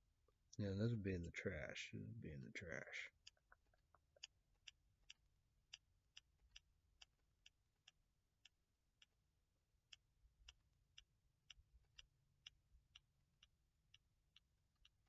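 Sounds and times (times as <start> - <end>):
faint sharp clicks: 9.9 - 15.0.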